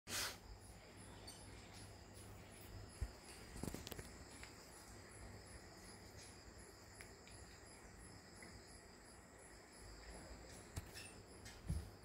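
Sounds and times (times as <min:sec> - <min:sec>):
faint high-pitched chirping: 0:00.1 - 0:12.0
faint steady high whine: 0:00.1 - 0:12.0.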